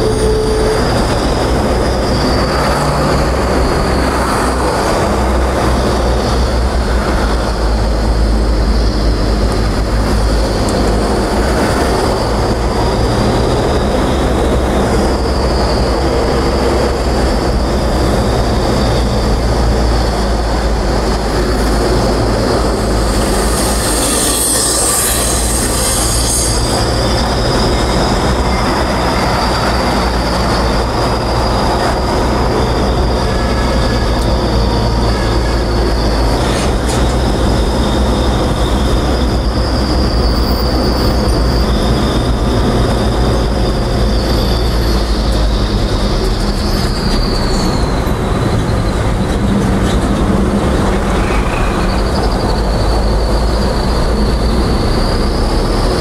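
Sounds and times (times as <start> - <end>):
thin high whine: 0.0 - 56.0
vehicle engine and road rumble: 0.0 - 56.0.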